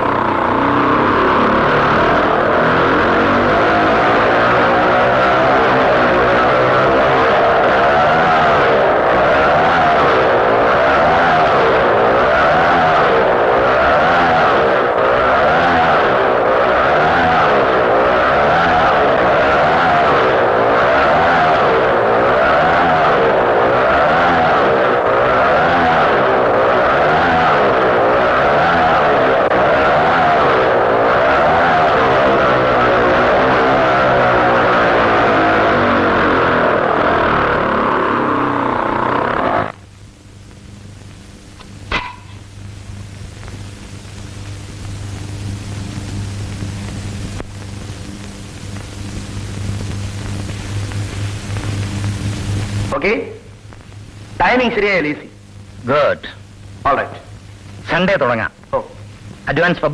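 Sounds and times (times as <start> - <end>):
motorcycle engine running hard: 0.0 - 39.9.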